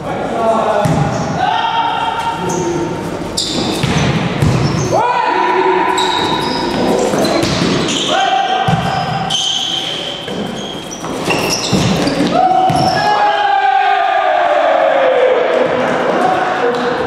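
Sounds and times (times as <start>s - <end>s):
volleyball struck and hitting floor: 0.8s - 1.1s, 3.6s - 4.9s, 6.1s - 8.0s, 8.6s - 9.3s, 10.2s - 13.0s
sneakers squeaking on court: 2.4s - 5.0s, 5.9s - 13.1s
players calling out: 11.3s - 17.0s.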